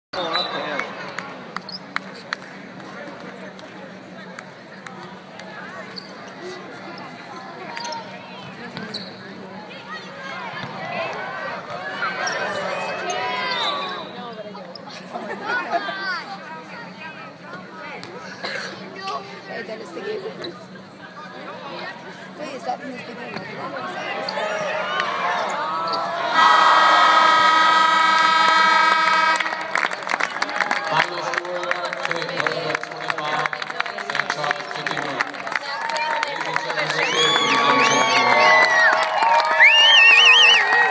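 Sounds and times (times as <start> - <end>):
voices shouting: 25.0 - 29.4
game-end buzzer: 27.2 - 29.8.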